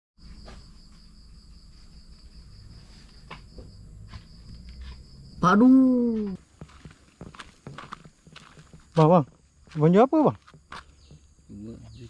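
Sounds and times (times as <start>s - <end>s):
crickets trilling: 0.2s - 12.0s.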